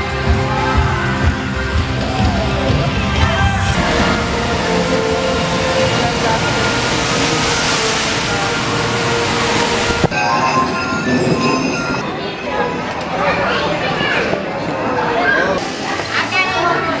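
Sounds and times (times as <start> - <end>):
water rushing from boat splashdown: 3.5 - 10.6.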